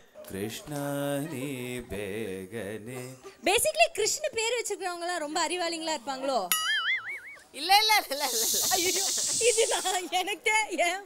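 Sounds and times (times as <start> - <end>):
people's voices: 7.6 - 11.0
hissing noise: 8.1 - 10.2.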